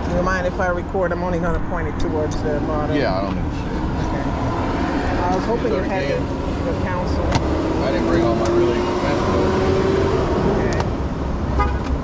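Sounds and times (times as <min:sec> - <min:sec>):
low rumble of traffic: 0:00.0 - 0:12.0
car horn blast: 0:11.5 - 0:11.9.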